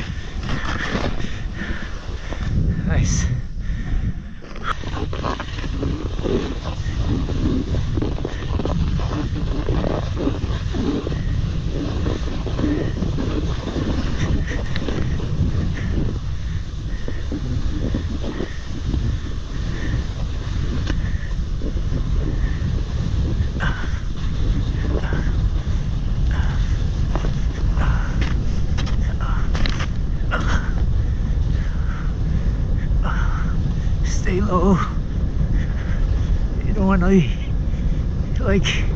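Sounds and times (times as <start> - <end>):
snowboard scraping over snow: 0.0 - 3.3, 4.2 - 38.9
wind rumbling on microphone: 0.0 - 38.9.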